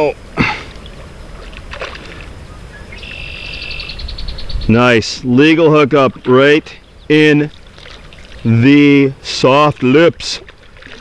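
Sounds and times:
fish thrashing and splashing: 0:00.4 - 0:02.4, 0:07.5 - 0:08.6, 0:09.8 - 0:11.0.

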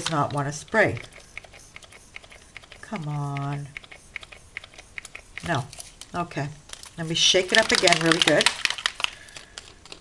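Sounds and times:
spray bottle pump clicking: 0:00.0 - 0:05.6.

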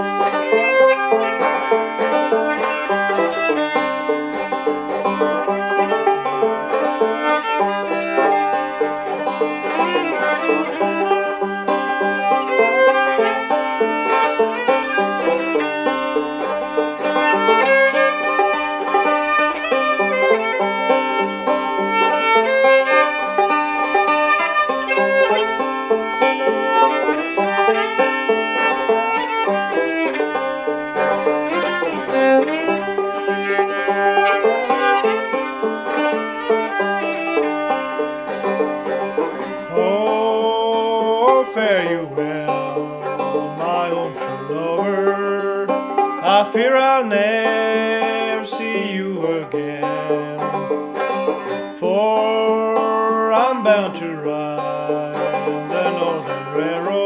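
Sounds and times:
banjo picking: 0:00.0 - 0:57.0
fiddle playing: 0:00.0 - 0:57.0.

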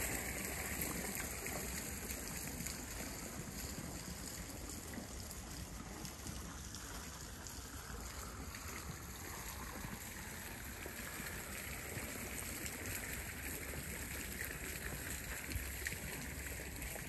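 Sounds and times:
fountain splashing into pond: 0:00.0 - 0:17.0.

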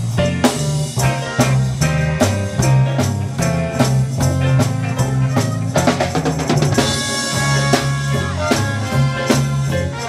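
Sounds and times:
drums: 0:00.0 - 0:10.0
electric bass line: 0:00.0 - 0:10.0
electric guitar: 0:00.0 - 0:10.0.

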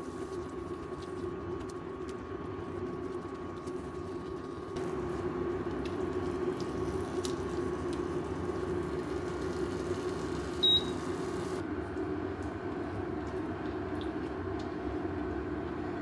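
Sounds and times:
short high beep: 0:10.6 - 0:11.0.

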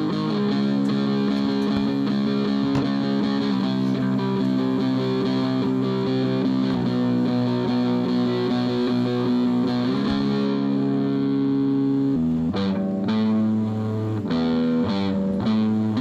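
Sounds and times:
distorted electric guitar: 0:00.0 - 0:16.0.

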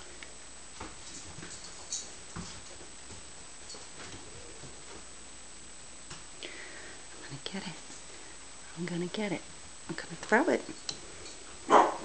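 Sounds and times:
patter of paws: 0:00.8 - 0:05.1.

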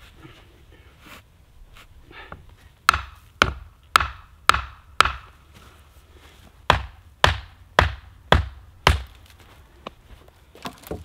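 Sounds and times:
sharp strikes on wood: 0:02.9 - 0:05.4, 0:06.7 - 0:09.2.

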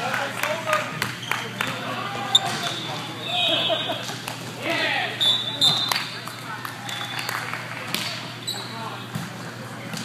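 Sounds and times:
voices echoing in gym: 0:00.0 - 0:10.0.

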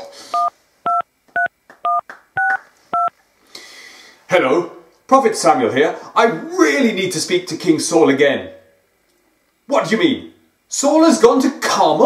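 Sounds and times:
phone keypad touch-tone beeps: 0:00.4 - 0:03.1.

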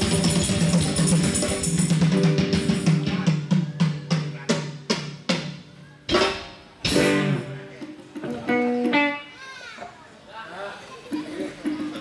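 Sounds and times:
live band held note: 0:00.0 - 0:09.6
voices calling and chattering: 0:07.7 - 0:12.0.

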